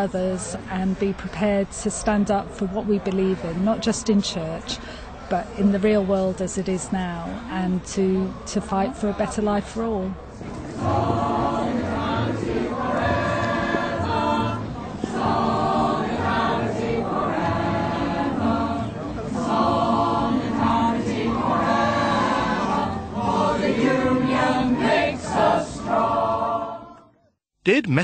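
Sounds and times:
choir singing: 10.6 - 27.2.

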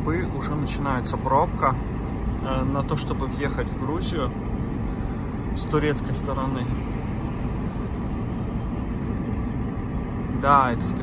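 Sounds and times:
car engine running: 0.0 - 11.0
tyres rumbling on road: 0.0 - 11.0.

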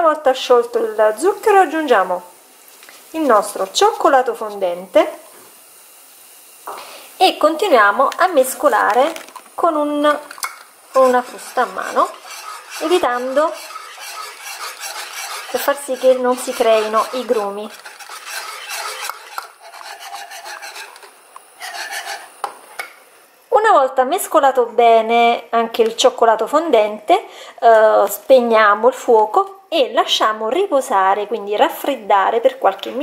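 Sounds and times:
water hissing in a saucepan: 0.0 - 23.7
whisk stirring liquid in a pot: 8.6 - 22.3.

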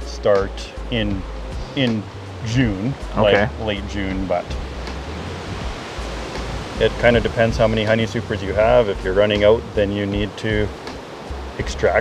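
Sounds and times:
wind noise on microphone: 1.1 - 11.8.

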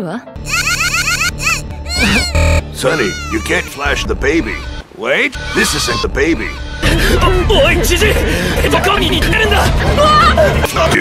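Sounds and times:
background music: 0.0 - 11.0
high wailing cries: 0.5 - 4.0, 5.4 - 7.3.

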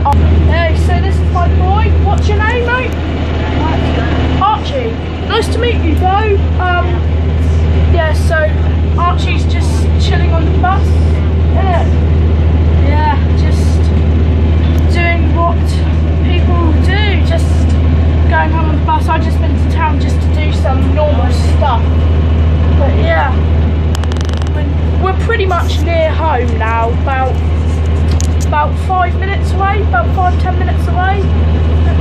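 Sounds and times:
bus engine droning: 0.0 - 32.0
voices talking: 0.0 - 32.0.

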